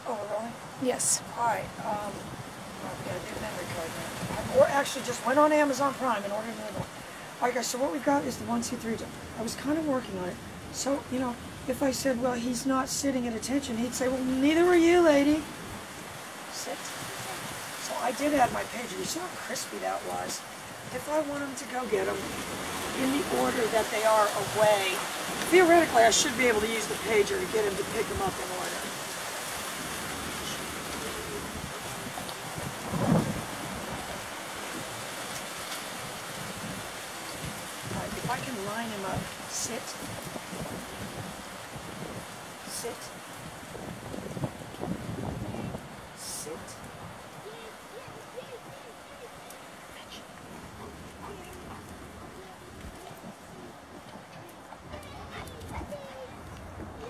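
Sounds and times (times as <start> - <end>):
outdoor background hiss: 0.0 - 57.0
dog paws on concrete: 49.4 - 57.0.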